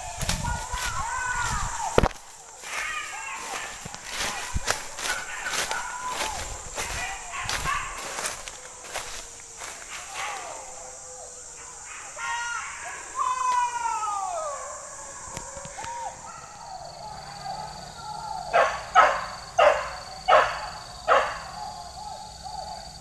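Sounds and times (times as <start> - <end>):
dogs barking and yelping: 0.0 - 13.2, 14.2 - 23.0.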